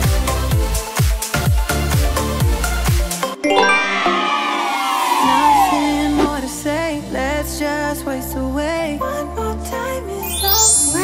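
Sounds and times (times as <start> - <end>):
sparkling chime descending: 3.4 - 6.5, 10.2 - 11.0.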